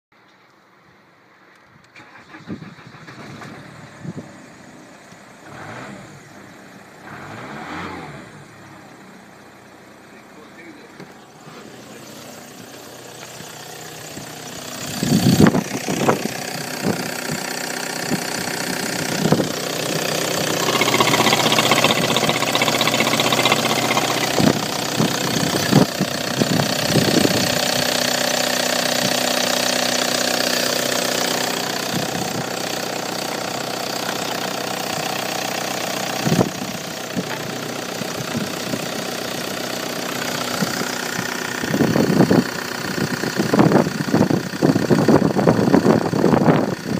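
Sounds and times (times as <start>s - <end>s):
diesel engine idling: 8.4s - 46.9s.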